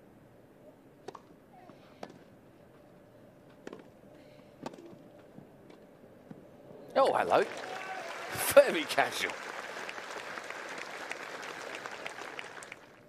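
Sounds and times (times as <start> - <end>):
faint background murmur: 0.4 - 7.0.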